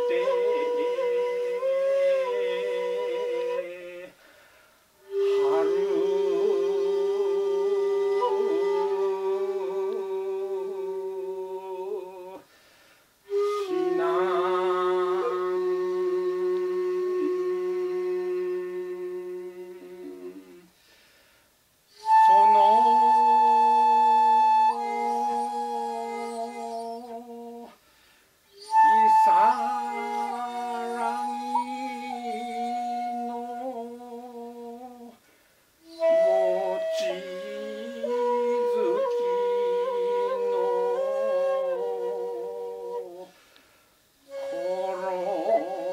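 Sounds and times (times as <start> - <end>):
bamboo flute long note: 0.0 - 4.2, 5.0 - 12.4, 13.2 - 20.7, 21.9 - 27.8, 28.5 - 35.2, 35.8 - 43.6, 44.2 - 45.9
shakuhachi tone: 0.0 - 4.2, 5.0 - 12.4, 13.2 - 20.7, 21.9 - 27.8, 28.5 - 35.2, 35.8 - 43.4, 44.2 - 45.9.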